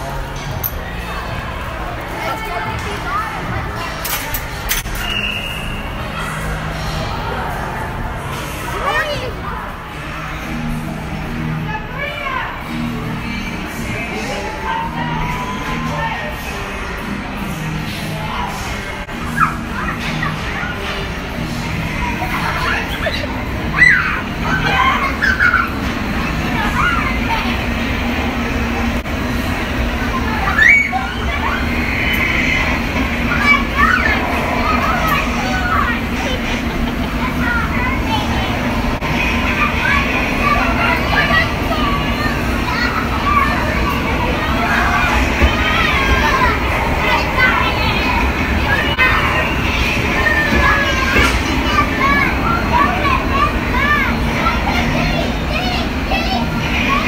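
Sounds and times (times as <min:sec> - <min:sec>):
constant low hum: 0:00.0 - 0:57.0
loud background rumble: 0:00.0 - 0:57.0
children calling and squealing: 0:11.5 - 0:17.2, 0:17.8 - 0:57.0
steady rushing noise: 0:16.4 - 0:57.0
children squealing and shrieking: 0:19.1 - 0:21.0, 0:22.0 - 0:27.4, 0:30.2 - 0:38.6.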